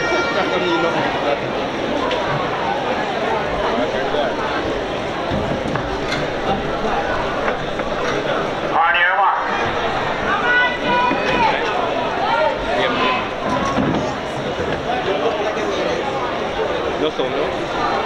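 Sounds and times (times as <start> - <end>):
stadium crowd chatter: 0.0 - 18.0
voices calling out: 6.5 - 16.9.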